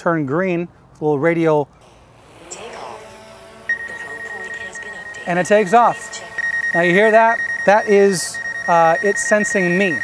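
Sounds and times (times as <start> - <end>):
drone propellers whirring: 1.8 - 8.7
high warning tone: 1.8 - 10.0.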